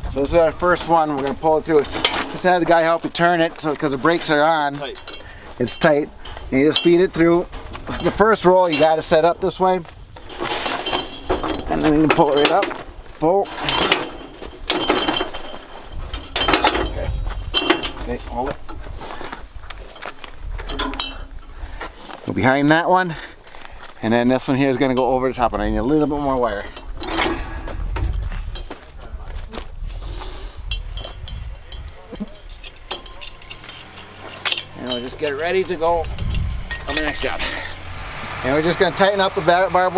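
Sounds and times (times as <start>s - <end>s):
barbed wire dispenser rattling: 0.6s - 9.6s, 10.2s - 18.8s, 19.9s - 21.4s, 30.6s - 37.8s
low rumble: 33.4s - 39.9s.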